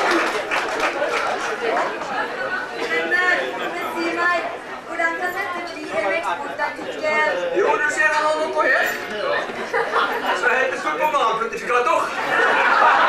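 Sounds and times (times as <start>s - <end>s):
overlapping voices talking: 0.0s - 13.0s.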